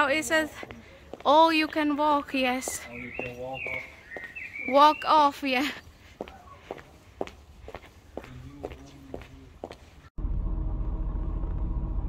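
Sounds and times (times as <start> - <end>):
footsteps on street paving: 0.0 - 10.1.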